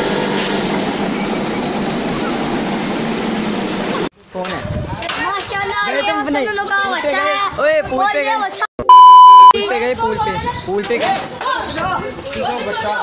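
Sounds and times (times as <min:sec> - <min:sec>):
men talking and shouting: 0:01.6 - 0:13.0
censor bleep: 0:08.8 - 0:09.6.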